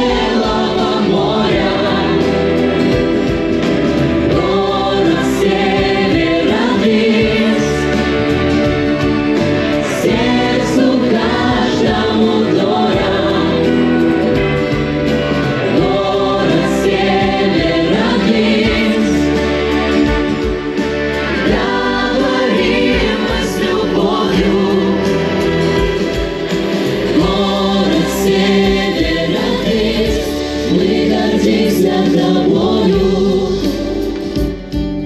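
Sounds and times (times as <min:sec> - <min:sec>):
instrumental accompaniment: 0:00.0 - 0:35.0
vocal ensemble singing in chorus: 0:00.0 - 0:35.0.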